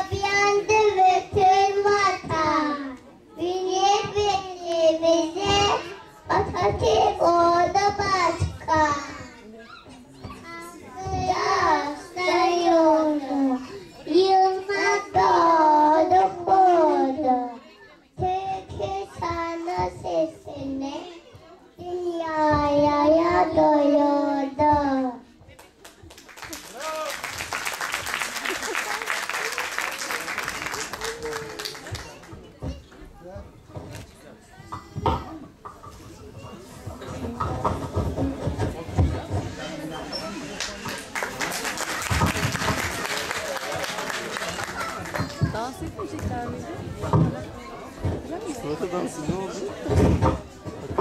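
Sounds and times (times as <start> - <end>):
child singing into microphone: 0.0 - 9.3, 10.6 - 17.6.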